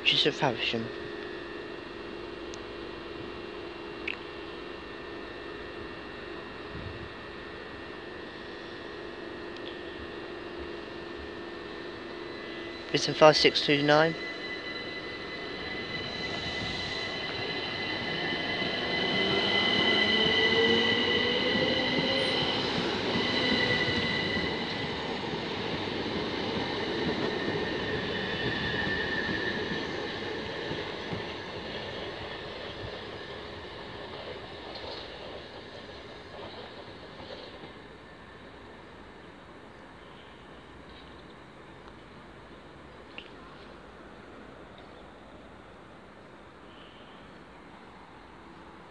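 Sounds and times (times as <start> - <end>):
electric train accelerating past: 0.0 - 48.9
train wheels running: 0.1 - 38.8
traction motor whine: 0.9 - 30.5.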